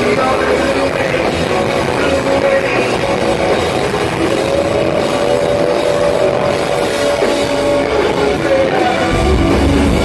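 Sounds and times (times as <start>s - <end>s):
distorted guitar: 0.0s - 10.0s
drums: 0.0s - 10.0s.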